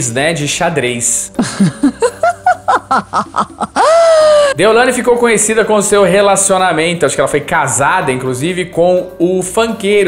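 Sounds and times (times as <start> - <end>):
woman laughing loudly: 1.4 - 4.6.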